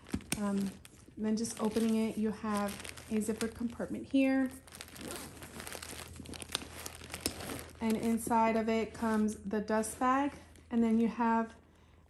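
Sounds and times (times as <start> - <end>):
tissue paper crinkling: 0.0 - 9.4.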